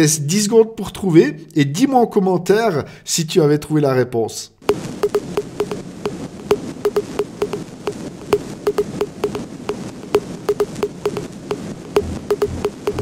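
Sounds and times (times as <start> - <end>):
sharp irregular clicks with low note: 4.6 - 13.0.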